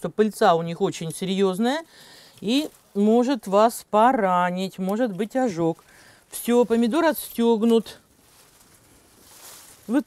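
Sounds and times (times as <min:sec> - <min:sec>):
rustling of plant leaves: 0:00.0 - 0:10.0.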